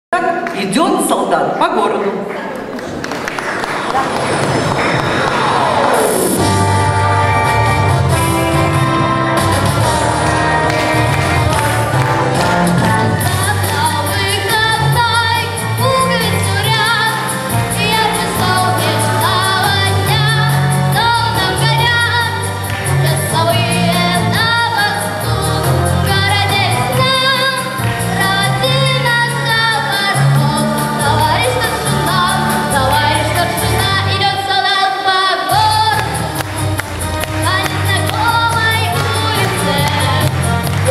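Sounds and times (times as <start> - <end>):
audience applauding: 2.5 - 6.5, 7.8 - 14.6, 35.9 - 40.9
instrumental music with beat and bass: 6.2 - 33.8
boy singing into microphone: 13.2 - 40.9.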